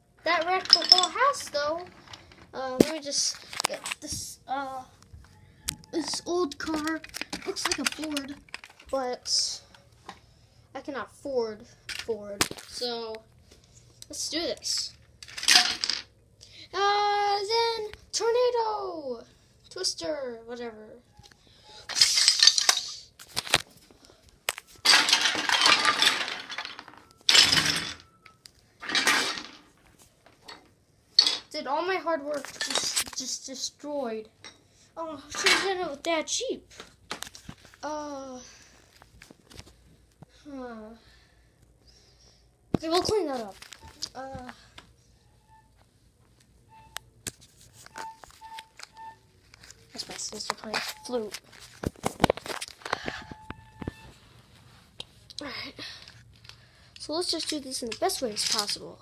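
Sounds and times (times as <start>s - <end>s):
toy pieces clattering: 0.2s - 4.1s, 5.9s - 9.6s, 11.9s - 12.9s, 14.2s - 16.1s, 21.8s - 23.6s, 24.5s - 29.8s, 30.5s - 31.6s, 32.3s - 33.6s, 35.3s - 36.0s, 55.4s - 59.0s.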